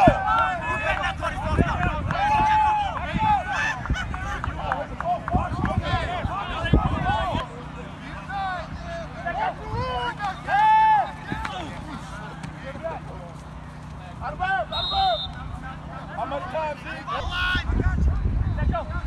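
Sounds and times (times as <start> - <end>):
players shouting calls: 0.0 - 19.0
referee's whistle blast: 14.6 - 15.4.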